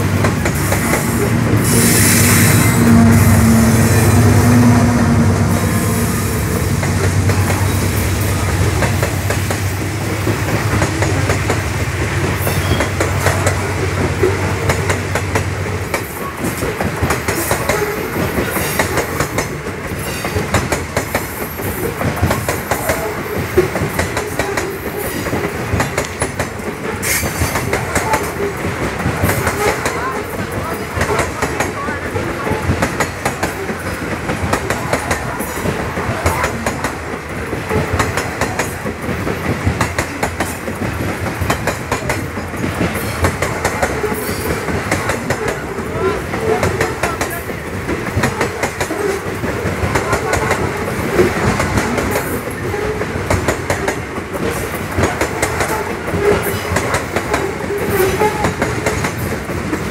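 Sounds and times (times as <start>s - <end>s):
train wagons rolling on rails: 0.0s - 59.9s.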